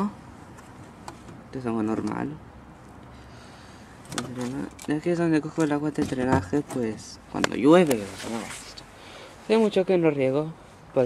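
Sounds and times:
faint background noise: 0:00.0 - 0:11.0
man speaking: 0:04.2 - 0:08.9, 0:09.5 - 0:11.0.

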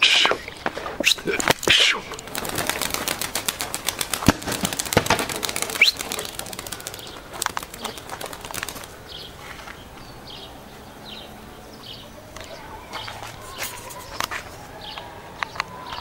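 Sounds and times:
pigeon wings flapping: 0:00.1 - 0:09.8, 0:12.4 - 0:14.8.

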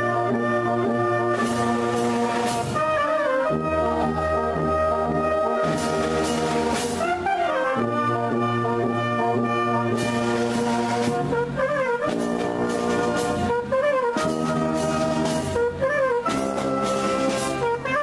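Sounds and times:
wind band brass chords: 0:00.0 - 0:18.0.

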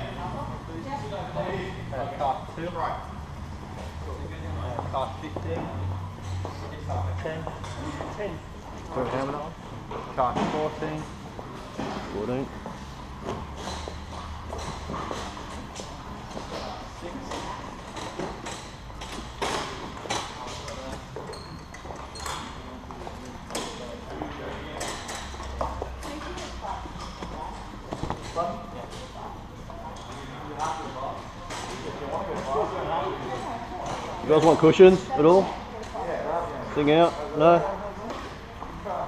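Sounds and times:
indistinct chatter in echoing hall: 0:00.0 - 0:39.0.

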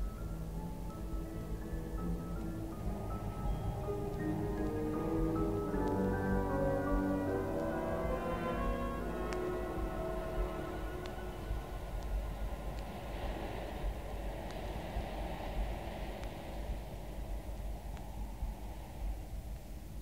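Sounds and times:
music: 0:00.0 - 0:14.6
vinyl surface noise: 0:00.0 - 0:14.7
low rumble: 0:00.0 - 0:19.6.

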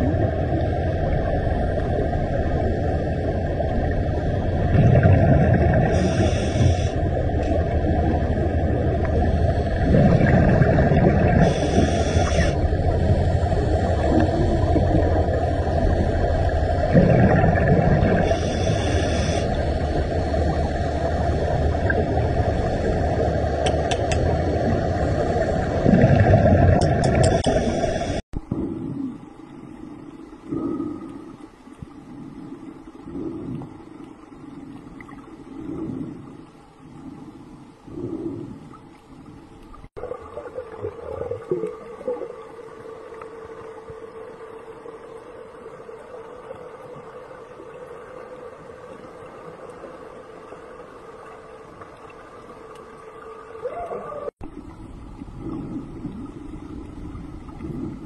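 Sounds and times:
scuba exhaust bubbles: 0:00.0 - 0:29.2, 0:37.9 - 0:44.9
low underwater rumble: 0:00.0 - 0:58.0
short bursts of hiss: 0:11.5 - 0:12.6.

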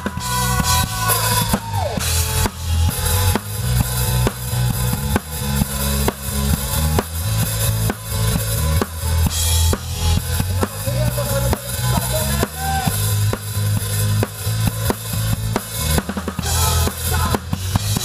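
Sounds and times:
bass notes: 0:00.0 - 0:18.0
drum kit with cymbals: 0:00.0 - 0:18.0
keyboard: 0:00.0 - 0:18.0.

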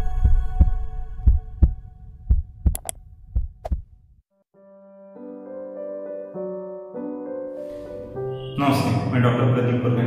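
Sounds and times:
heartbeat double thump: 0:00.1 - 0:04.0.

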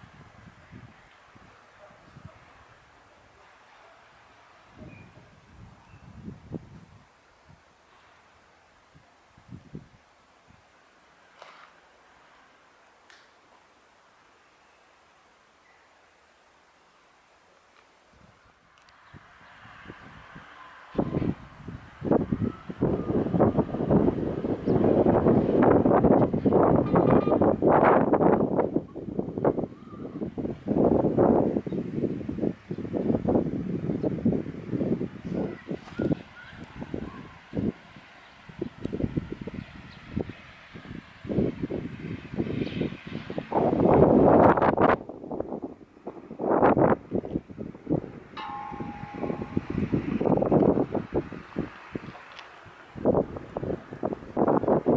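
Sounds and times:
gusty wind buffeting microphone: 0:00.0 - 0:10.8, 0:18.0 - 0:54.9
faint steady tone: 0:48.4 - 0:50.5.

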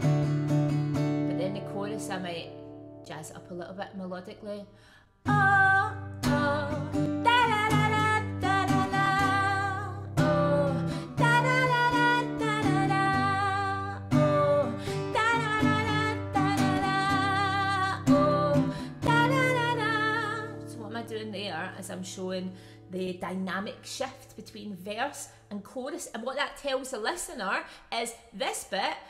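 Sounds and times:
strummed acoustic guitar: 0:00.0 - 0:02.2, 0:05.3 - 0:21.2
woman singing with vibrato: 0:05.3 - 0:24.1.

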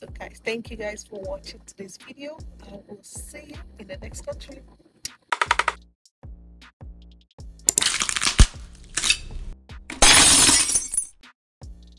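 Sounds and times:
glass shattering: 0:07.7 - 0:11.2.

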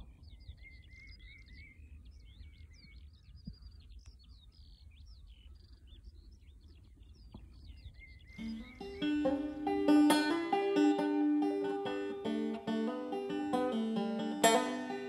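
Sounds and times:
small birds chirping: 0:00.0 - 0:15.0
banjo picking: 0:08.4 - 0:15.0.

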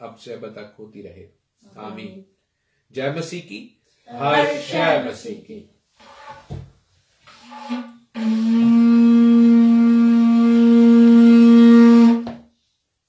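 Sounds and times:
ram's horn blast: 0:07.5 - 0:12.2.

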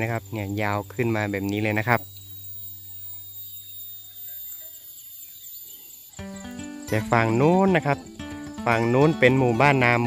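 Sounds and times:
insects droning: 0:00.0 - 0:10.0.

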